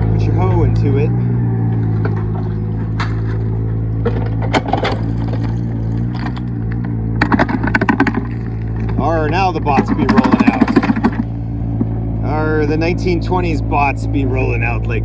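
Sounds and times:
backhoe diesel engine running: 0.0s - 15.0s.

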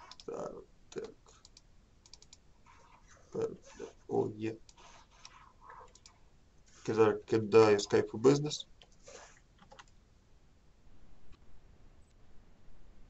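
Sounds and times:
mouse clicking: 0.0s - 0.3s, 0.9s - 3.1s, 4.6s - 6.2s, 9.6s - 10.0s
keyboard keystrokes: 9.6s - 9.9s.

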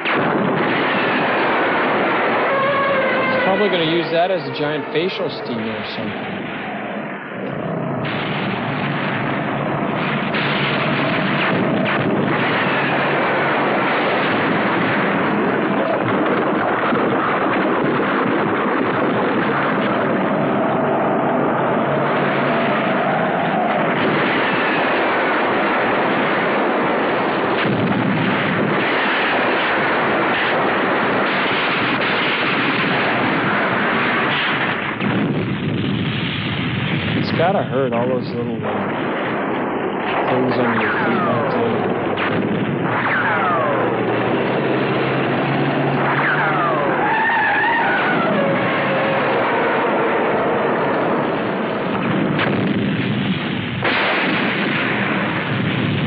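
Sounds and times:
cannon fire and explosions: 0.0s - 56.0s.

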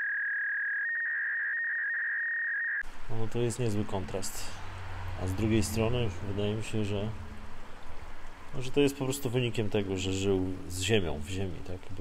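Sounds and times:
high sine-wave beep: 0.0s - 2.8s.

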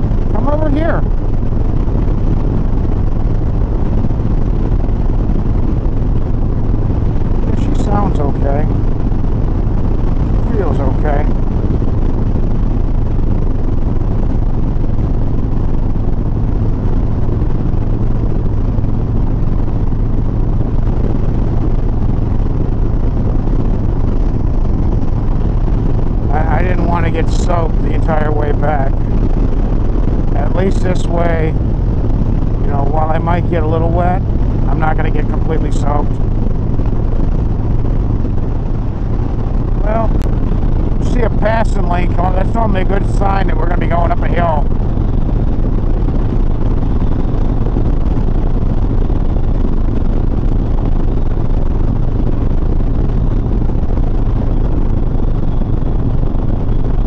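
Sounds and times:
motorcycle engine cruising: 0.0s - 57.0s
man's voice: 0.3s - 1.0s, 7.5s - 8.7s, 10.4s - 11.3s, 26.3s - 29.1s, 30.4s - 31.6s, 32.6s - 36.2s, 39.8s - 40.2s, 41.0s - 44.7s.

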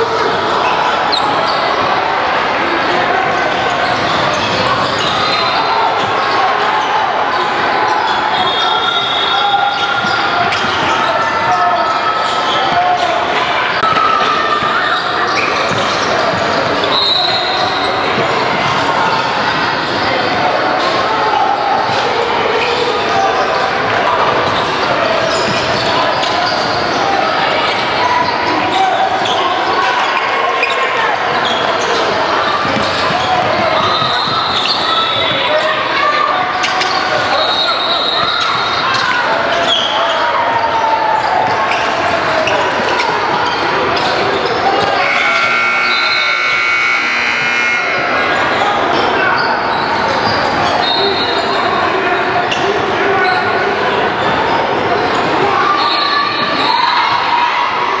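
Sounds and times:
sneakers squeaking: 0.0s - 2.6s, 3.2s - 21.0s, 21.6s - 56.9s
indistinct voices: 0.0s - 58.0s
electronic scoreboard horn: 45.0s - 48.3s.

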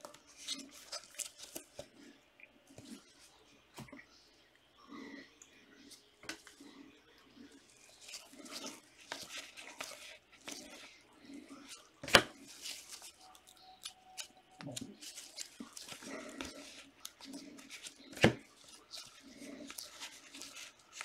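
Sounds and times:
cards rustling and sliding: 0.0s - 1.9s, 8.0s - 10.9s, 11.6s - 21.0s.

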